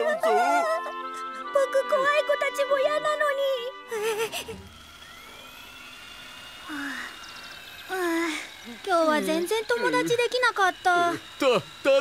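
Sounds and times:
cartoon background ambience: 0.0 - 4.3
breathy sigh-like voice: 6.6 - 7.2.

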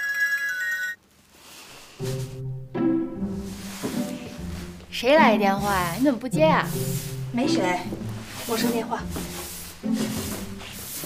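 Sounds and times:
mobile phone ringtone melody: 0.0 - 1.0.

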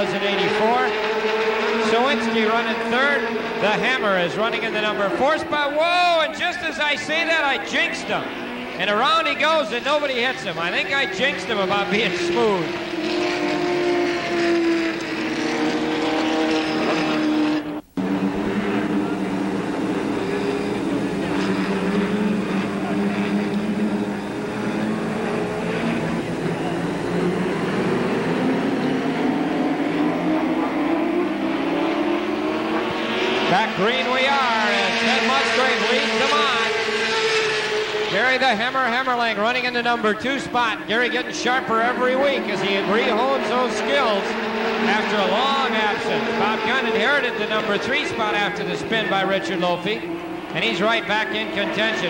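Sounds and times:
race car engines passing: 0.0 - 52.0.

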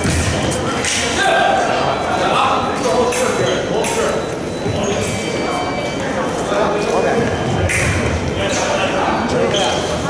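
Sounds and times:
voices murmuring with echo: 0.0 - 10.0.

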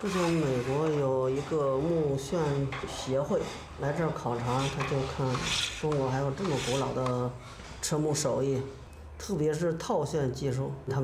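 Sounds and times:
cutter scraping turning wood: 0.0 - 8.0
man speaking: 0.0 - 11.0.

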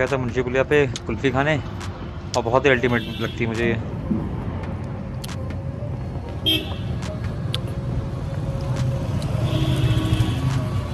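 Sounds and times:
traffic engines rumbling: 0.0 - 10.9.

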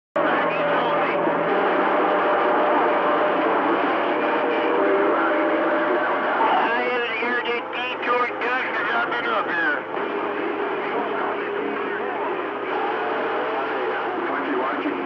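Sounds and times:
jumbled radio voices: 0.2 - 15.0
radio static: 3.4 - 10.0.

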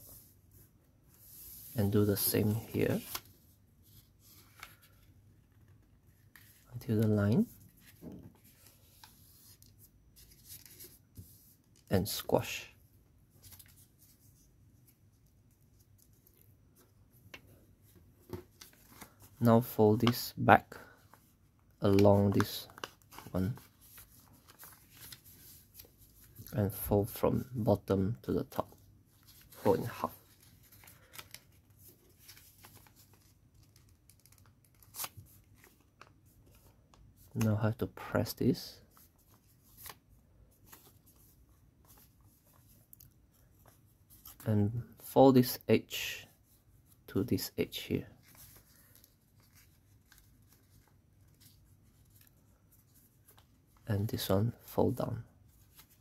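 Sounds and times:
paper rustling and crinkling: 2.3 - 11.6, 13.4 - 19.4, 21.0 - 26.6, 28.5 - 37.4, 38.9 - 44.5, 48.2 - 53.9, 55.4 - 56.0.

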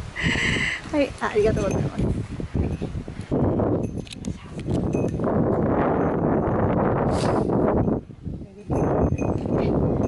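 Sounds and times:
camera handling noise: 4.0 - 4.9.

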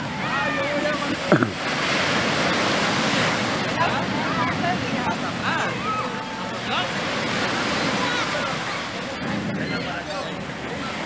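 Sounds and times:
waves washing up a beach: 0.0 - 11.0.

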